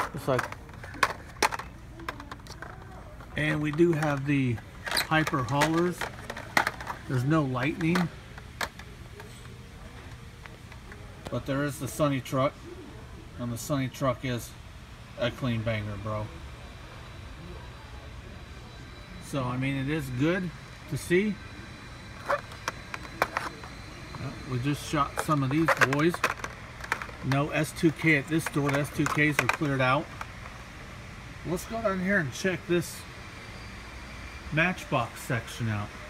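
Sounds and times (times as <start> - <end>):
toy cars clacking: 0.0 - 9.6, 22.2 - 30.4
ventilation hum: 0.0 - 36.0.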